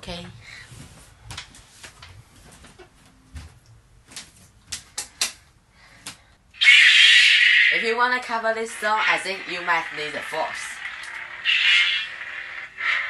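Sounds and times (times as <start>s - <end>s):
loud rushing hiss: 8.7s - 13.0s.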